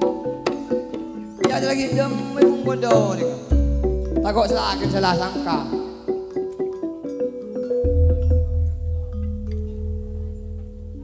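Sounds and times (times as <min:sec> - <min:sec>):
metallophones ringing: 0:00.0 - 0:11.0
gong humming: 0:07.8 - 0:11.0.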